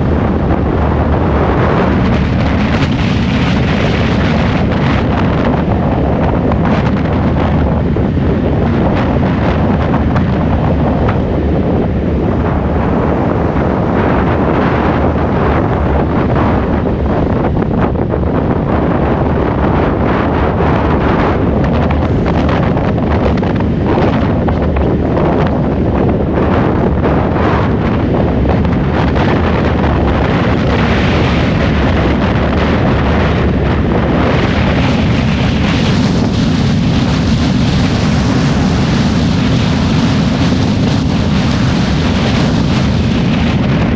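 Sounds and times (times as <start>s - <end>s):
road noise: 0.0s - 43.9s
wind buffeting microphone: 0.0s - 43.9s.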